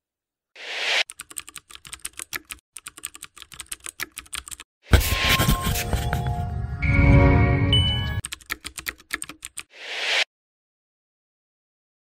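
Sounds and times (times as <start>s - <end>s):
keyboard typing clicks: 1.1s - 4.6s, 8.2s - 9.7s.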